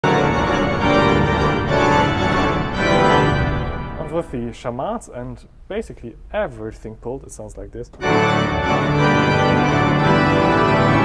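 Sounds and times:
pipe organ chords: 0.0 - 4.6, 7.9 - 11.0.

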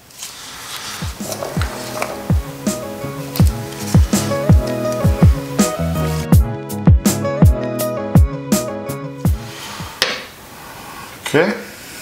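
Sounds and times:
background music with drum thumps: 1.0 - 10.2.

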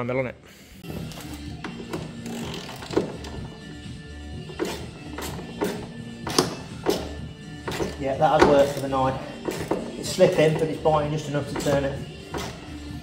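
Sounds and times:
background music: 0.0 - 13.0
ratchet taps and clicks: 4.5 - 10.8.

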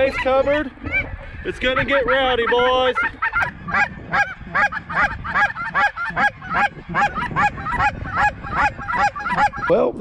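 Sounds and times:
geese calling: 0.0 - 10.0.

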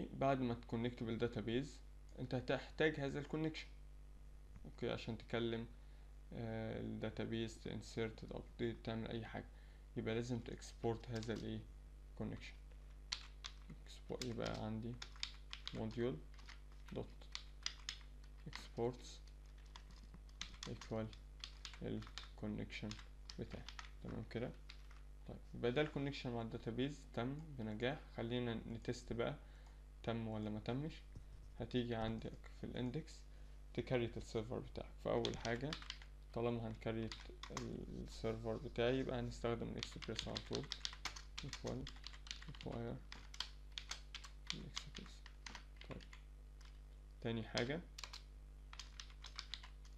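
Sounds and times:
low electrical hum: 0.0 - 49.9
computer keyboard typing: 11.0 - 11.5, 13.1 - 25.0, 35.2 - 36.1, 37.0 - 37.8, 39.8 - 46.8, 47.6 - 49.9.

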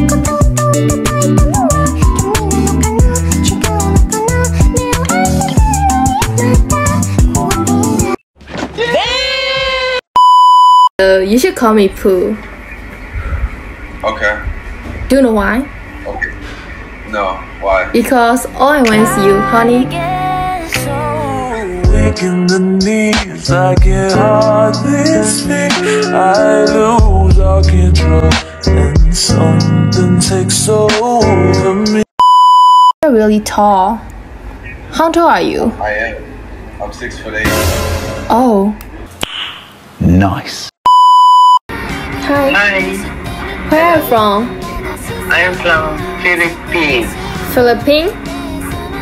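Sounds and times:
background music: 0.0 - 8.2, 18.0 - 32.1, 37.4 - 38.6, 41.7 - 49.0
electronic censor bleep: 10.2 - 10.9, 32.2 - 33.0, 40.9 - 41.6
test-tone beep: 10.2 - 10.9, 32.2 - 32.9, 40.9 - 41.6.

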